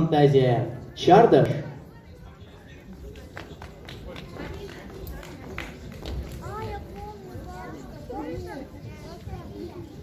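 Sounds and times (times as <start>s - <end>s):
audience murmur: 0.7s - 10.0s.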